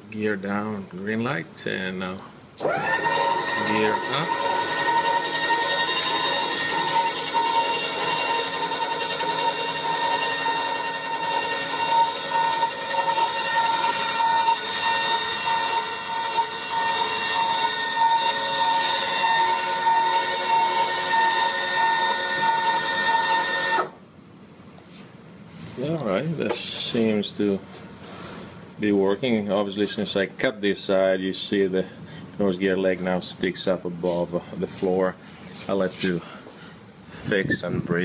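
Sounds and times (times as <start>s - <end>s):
electric motor whining: 2.6s - 24.0s.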